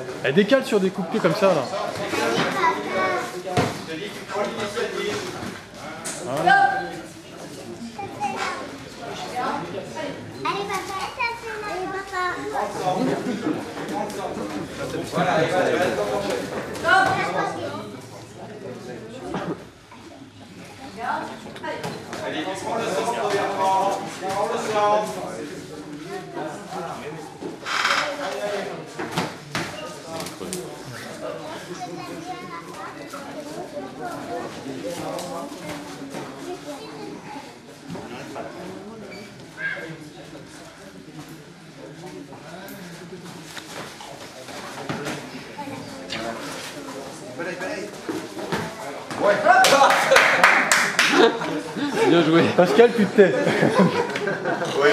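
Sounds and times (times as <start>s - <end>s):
background voices in a hall: 0.0s - 54.9s.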